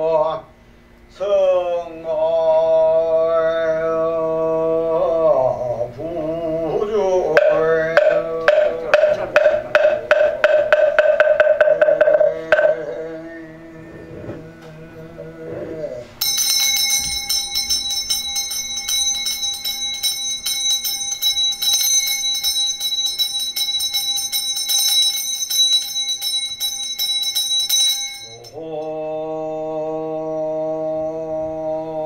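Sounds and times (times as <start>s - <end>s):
man chanting: 1.1s - 10.7s, 11.8s - 16.1s, 28.4s - 32.0s
handbell jingling: 7.4s - 12.8s, 16.2s - 28.6s.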